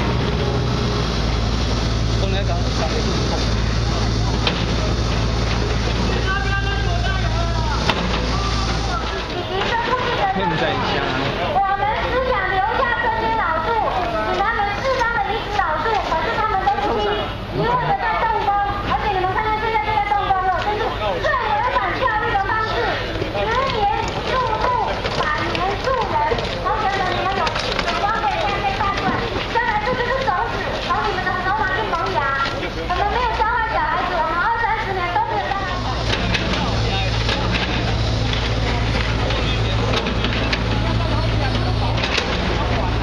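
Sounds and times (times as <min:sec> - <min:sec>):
excavator diesel engine drone: 0:00.0 - 0:43.0
people talking: 0:00.0 - 0:43.0.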